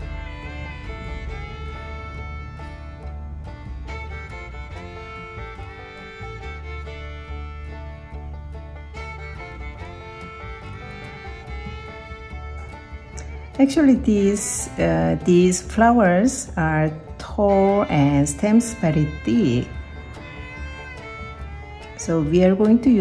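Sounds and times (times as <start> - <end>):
fiddle and guitar tune: 0.0 - 23.0
steady bass: 0.0 - 23.0.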